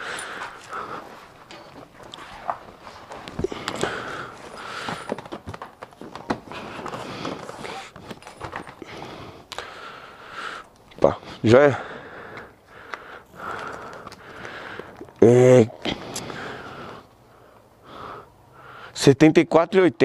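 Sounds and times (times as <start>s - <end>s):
footsteps: 0.0s - 9.1s
bag rustling: 0.0s - 9.4s.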